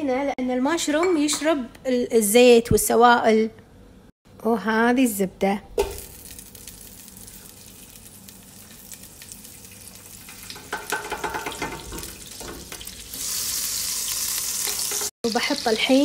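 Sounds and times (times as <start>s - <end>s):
butter sizzling in hot oil: 5.8s - 16.0s.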